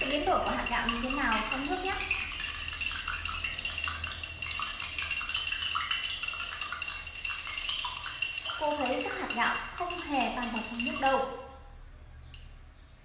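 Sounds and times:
spoon clinking against cup: 0.0s - 11.4s
spoon stirring rice in water: 0.0s - 11.4s.

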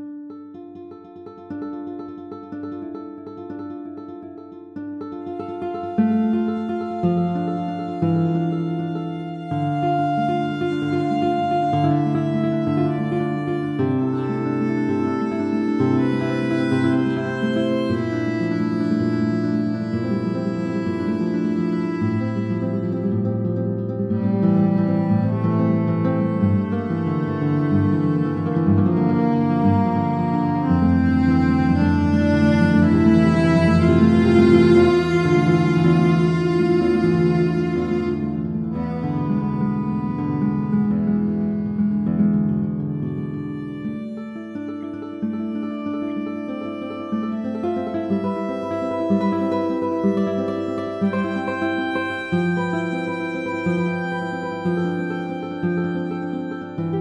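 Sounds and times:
classical guitar plucked notes: 0.0s - 57.0s.

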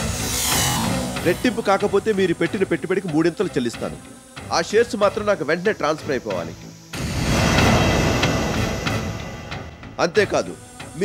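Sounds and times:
loud rushing sound effect: 7.0s - 10.0s.

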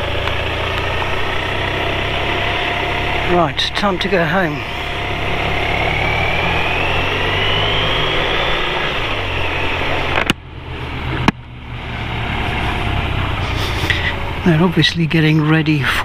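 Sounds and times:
motorcycle engine riding off: 0.0s - 15.5s
rising whine: 0.0s - 16.0s.

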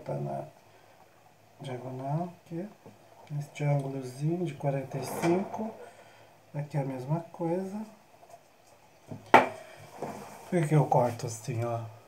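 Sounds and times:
knocks on a worktable: 9.1s - 9.6s.

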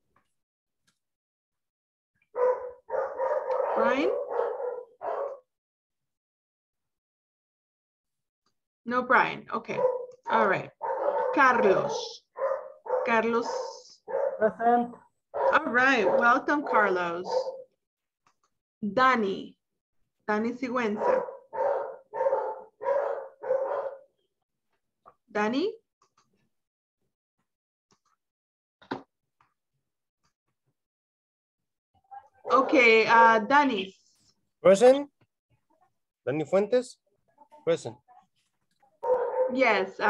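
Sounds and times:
dog barking: 2.3s - 5.5s, 9.7s - 17.8s, 20.8s - 24.2s, 32.2s - 33.5s, 39.0s - 40.0s.

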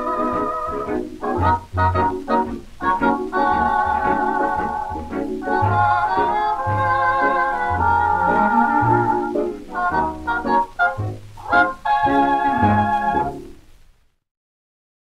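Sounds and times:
dance orchestra playing foxtrot: 0.0s - 13.6s.

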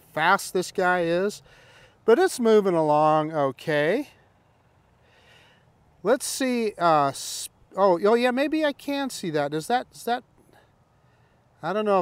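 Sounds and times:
soft breath: 1.4s - 2.0s, 4.2s - 5.8s, 10.4s - 11.6s.

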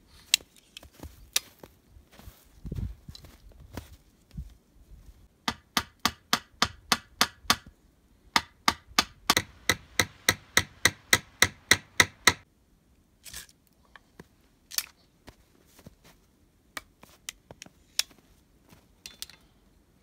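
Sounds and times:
blade chopping tree trunk: 8.4s - 12.4s.

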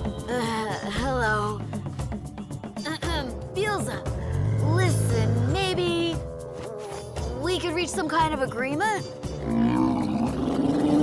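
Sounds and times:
background music: 0.0s - 11.0s
monster deep roar: 9.4s - 11.0s.

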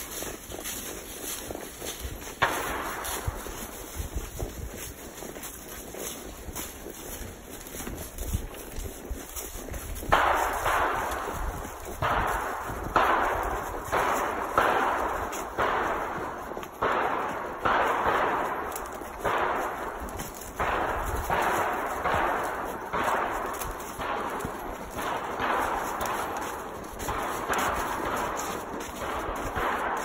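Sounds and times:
hooves crunching through dry leaves: 0.0s - 30.0s.

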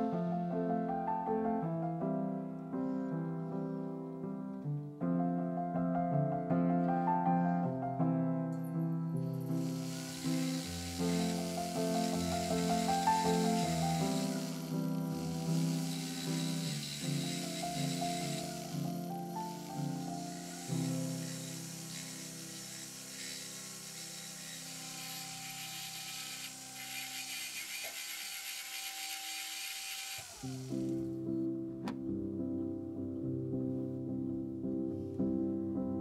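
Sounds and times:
background music: 0.0s - 25.6s, 30.8s - 36.0s
rotary tool grinding shell: 9.4s - 31.0s.

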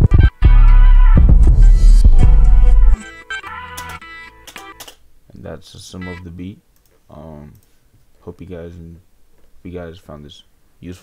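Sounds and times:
trap beat with heavy bass: 0.0s - 3.0s.

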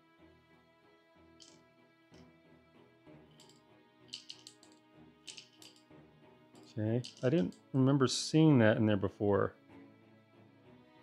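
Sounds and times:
quiet background music: 0.0s - 11.0s
wooden puzzle pieces clicking: 3.4s - 5.8s, 6.6s - 7.6s.

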